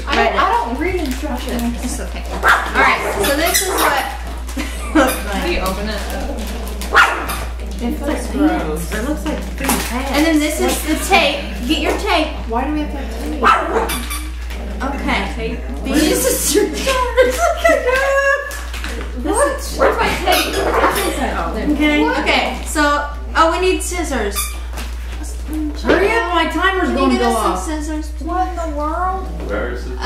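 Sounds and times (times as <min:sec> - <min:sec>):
foil pouches crinkling: 0:00.3 - 0:14.6, 0:15.6 - 0:21.3, 0:24.4 - 0:26.1.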